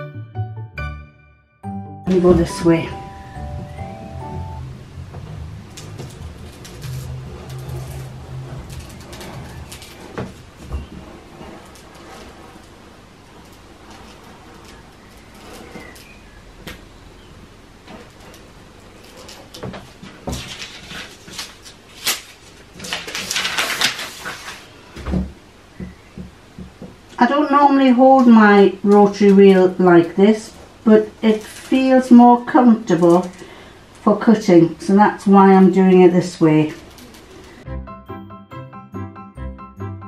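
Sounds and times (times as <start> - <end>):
rotary cutter slicing paper: 5.5 - 16.9, 17.9 - 24.8
paper crackling and rustling: 5.6 - 16.4, 17.8 - 25.0, 30.3 - 33.4, 36.5 - 37.6.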